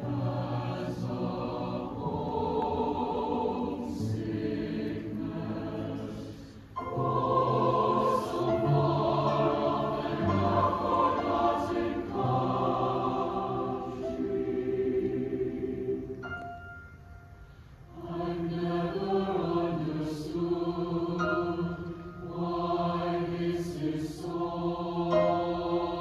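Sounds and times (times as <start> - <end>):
cello: 0.0 - 16.2
choir singing sustained chords: 0.0 - 26.0
piano: 0.0 - 26.0.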